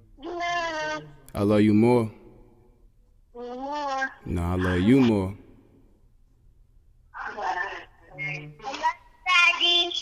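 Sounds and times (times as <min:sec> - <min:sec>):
young child speaking: 0:07.2 - 0:10.0.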